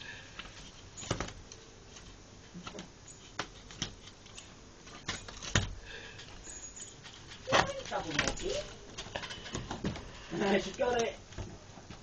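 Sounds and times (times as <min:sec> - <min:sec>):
faint rustling: 0:00.0 - 0:12.0
sharp taps and scratches: 0:00.4 - 0:12.0.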